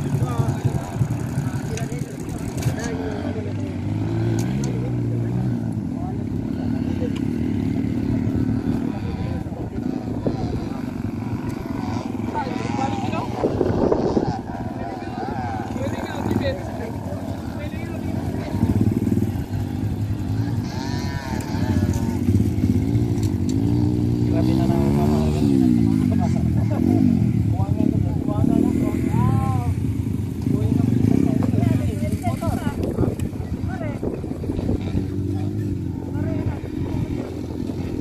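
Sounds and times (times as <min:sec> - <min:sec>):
dirt bike engine revving: 0:00.0 - 0:38.0
voices: 0:00.0 - 0:38.0.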